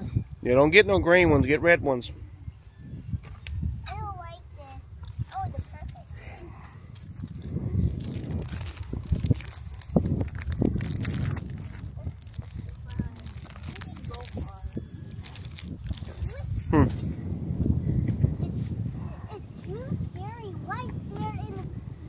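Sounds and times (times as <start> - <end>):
wind rumbling on microphone: 0.0 - 22.0
rustling and handling noise: 7.3 - 16.7
children's voices: 18.4 - 21.9.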